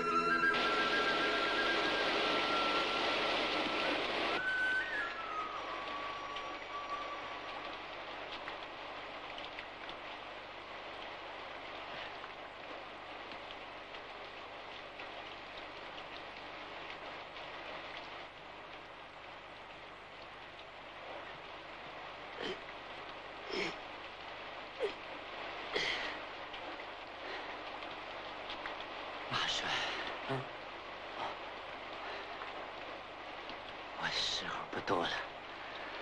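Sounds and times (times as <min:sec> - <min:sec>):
heavy rain falling: 0:00.0 - 0:36.0.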